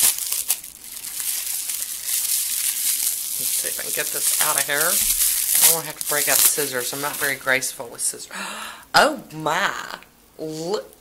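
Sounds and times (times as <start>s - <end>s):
bubble wrap crinkling: 0.0s - 7.8s.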